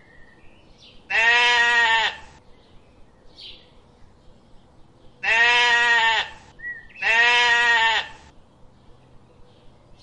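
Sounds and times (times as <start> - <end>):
sheep bleating: 1.1 - 2.4, 5.2 - 8.3.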